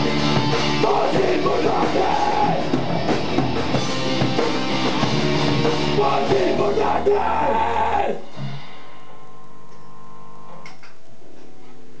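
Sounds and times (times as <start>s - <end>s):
guitar and bass ringing drone: 0.0s - 11.5s
amp hum: 0.0s - 12.0s.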